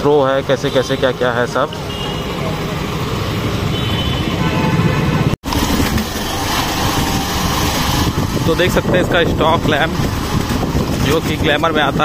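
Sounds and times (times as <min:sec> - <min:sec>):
road and traffic rumble: 0:00.0 - 0:12.0
motorcycle engine running: 0:05.0 - 0:12.0.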